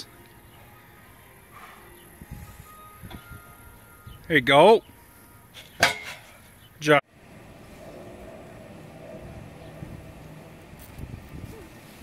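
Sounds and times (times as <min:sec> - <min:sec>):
metal frame clanking on pavement: 0:05.6 - 0:06.5.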